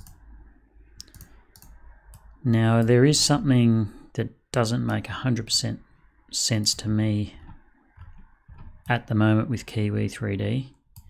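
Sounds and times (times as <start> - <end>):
faint computer clicks: 1.0 - 2.3.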